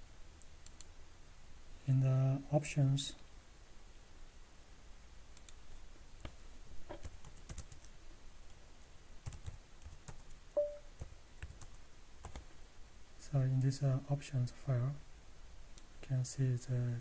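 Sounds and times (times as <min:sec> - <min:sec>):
computer keyboard typing: 0:06.9 - 0:07.9, 0:09.2 - 0:12.4
steady beep: 0:10.6 - 0:10.9.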